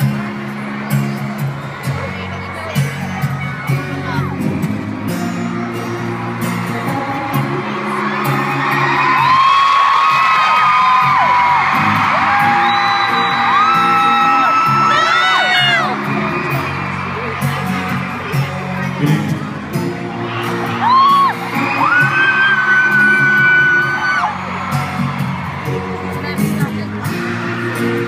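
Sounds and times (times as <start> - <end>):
crowd screaming: 0.0 - 28.0
slow band music: 0.0 - 28.0.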